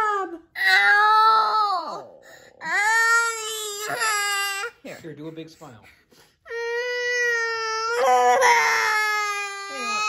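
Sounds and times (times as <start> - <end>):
boy crying in high wails: 0.0 - 2.0, 6.5 - 10.0.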